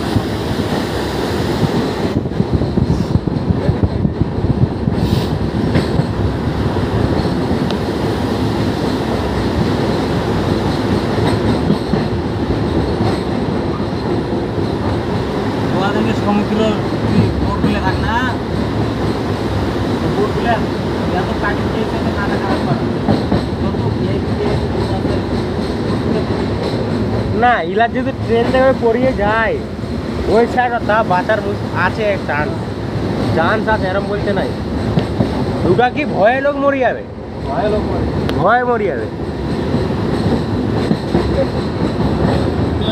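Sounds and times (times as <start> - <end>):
train wheels rumbling on rails: 0.0 - 42.9.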